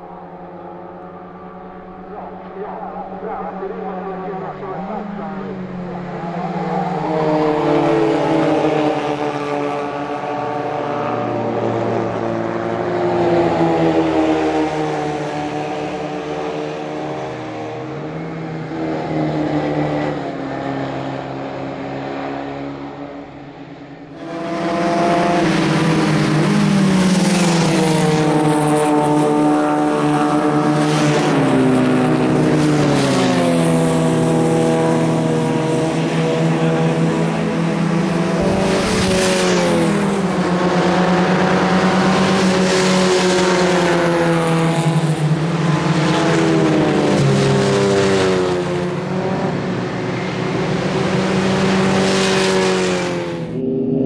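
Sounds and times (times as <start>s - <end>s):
race car engines: 0.0s - 54.0s.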